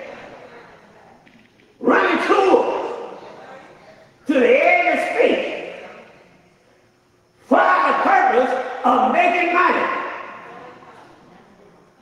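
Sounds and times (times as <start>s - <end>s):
man speaking in echoing hall: 1.8s - 6.3s, 7.3s - 10.9s.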